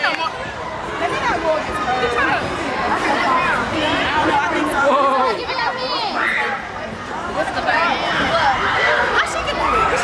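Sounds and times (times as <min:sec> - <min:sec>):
young people chattering: 0:00.0 - 0:10.0.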